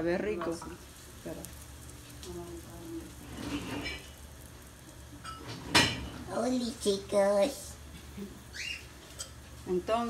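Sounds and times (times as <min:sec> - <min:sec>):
oil frying quietly: 0:00.0 - 0:10.0
kitchenware clank: 0:05.2 - 0:06.2.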